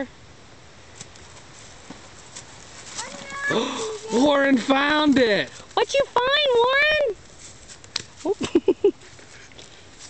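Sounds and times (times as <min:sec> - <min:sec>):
high-pitched excited cry: 0:03.0 - 0:04.3
person gasping: 0:03.5 - 0:04.0.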